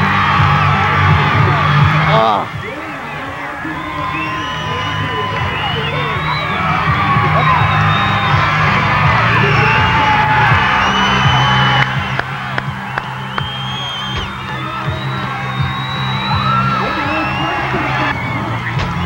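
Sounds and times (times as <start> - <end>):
crowd whooping and yelling: 0.0 - 19.0
music playing: 0.0 - 19.0.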